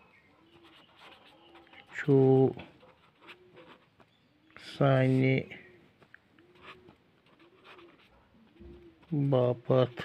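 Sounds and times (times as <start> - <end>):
pen scratching on paper: 0.5 - 4.1, 6.5 - 9.6
bird cooing: 3.3 - 3.7, 5.4 - 9.2.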